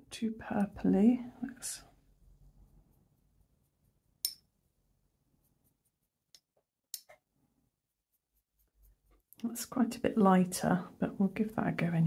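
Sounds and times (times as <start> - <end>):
paintbrush stirring paint in a dish: 0.4 - 9.7.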